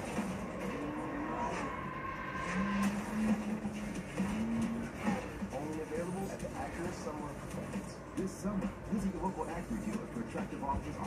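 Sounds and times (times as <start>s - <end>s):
car engine accelerating: 0.0s - 5.6s.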